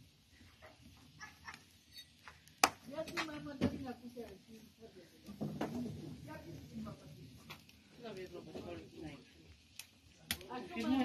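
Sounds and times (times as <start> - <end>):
wood fire crackling and popping: 0.0 - 11.0.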